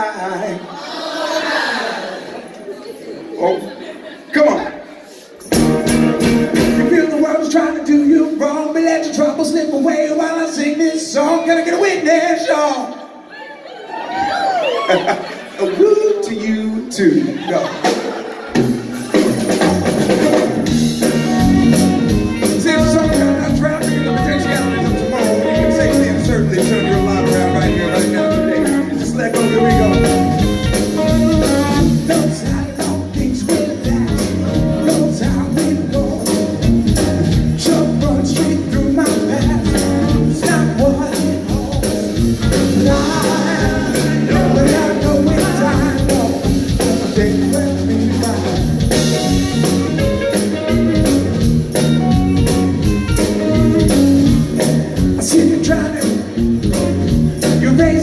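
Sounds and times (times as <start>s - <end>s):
live funk band playing: 5.1s - 9.6s, 15.1s - 58.0s
electric guitar: 5.4s - 7.0s, 18.6s - 58.0s.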